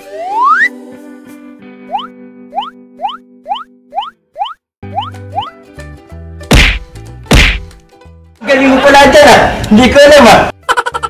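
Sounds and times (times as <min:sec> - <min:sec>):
cartoon whack sound effects: 0:06.5 - 0:07.7.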